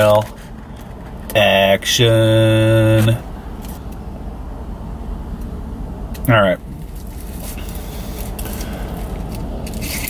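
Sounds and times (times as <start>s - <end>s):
aluminium foil crinkling: 6.8s - 10.0s.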